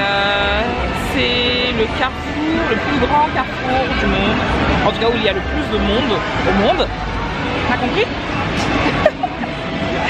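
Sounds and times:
people talking: 0.0 - 7.0
busy street crowd noise: 0.0 - 10.0
steady pitched tone: 0.0 - 10.0.

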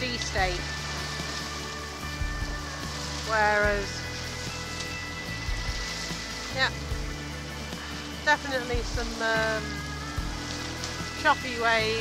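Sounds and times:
boat engine drone: 0.0 - 12.0
choppy water: 0.0 - 12.0.

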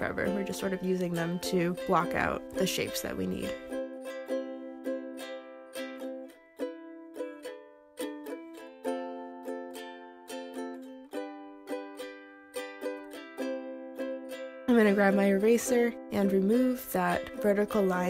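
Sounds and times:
ukulele plucked chords: 0.0 - 18.0.

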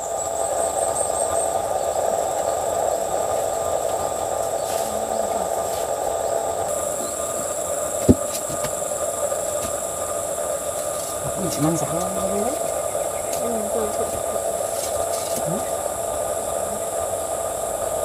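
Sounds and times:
steady hum: 0.0 - 18.0
thin high whine: 0.0 - 18.0
short knock: 8.0 - 8.8.

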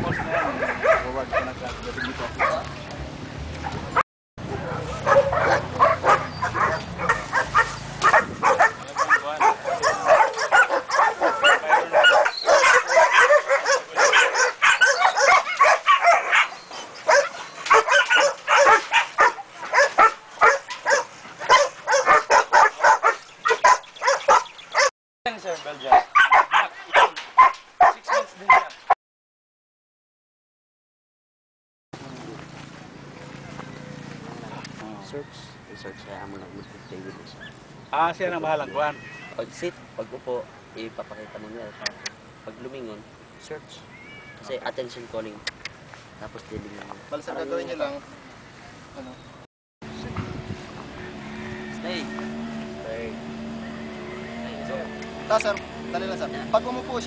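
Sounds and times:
dogs barking and yipping: 0.0 - 2.9, 3.6 - 24.9, 25.7 - 29.0, 37.3 - 37.7.

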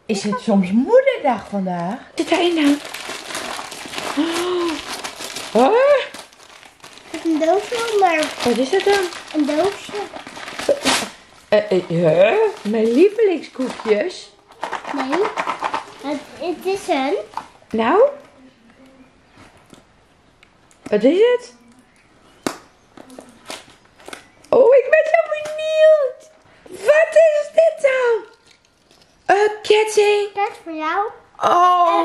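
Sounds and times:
cardboard packaging being opened: 2.2 - 11.6, 12.2 - 17.5
wrapping paper crinkling and tearing: 2.2 - 17.4.

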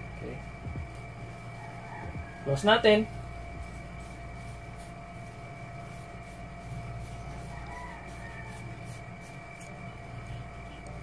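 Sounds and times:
air conditioner hum: 0.0 - 11.0
faint steady tones: 0.0 - 11.0.

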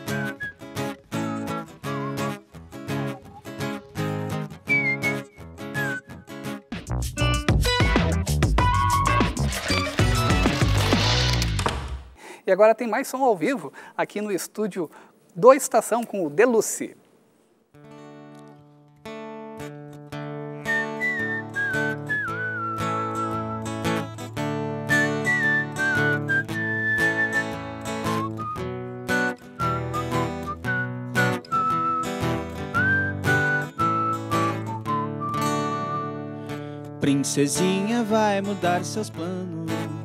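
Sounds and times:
whistled melody: 0.0 - 2.5, 4.6 - 6.6, 7.2 - 10.8, 20.6 - 24.1, 24.8 - 36.6
acoustic guitar strumming: 0.0 - 11.7, 17.8 - 40.0.

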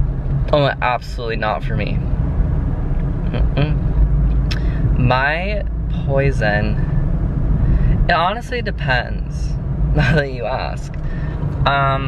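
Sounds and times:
car engine rumble: 0.0 - 12.0
road noise: 0.0 - 12.0
voice murmur: 3.3 - 3.8.

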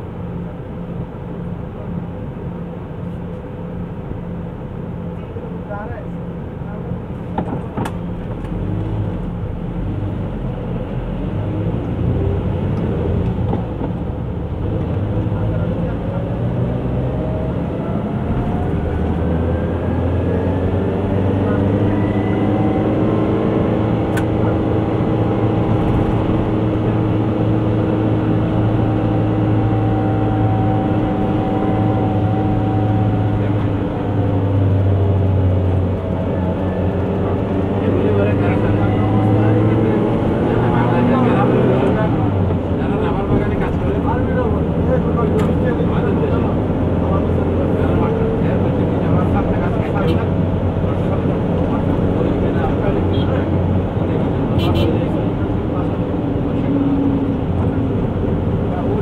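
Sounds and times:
car engine accelerating: 6.7 - 59.0.

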